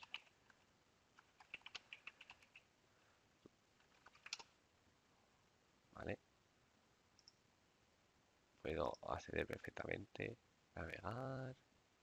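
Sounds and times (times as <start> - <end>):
faint computer keyboard typing: 0.0 - 2.7, 3.8 - 4.6, 7.2 - 7.4.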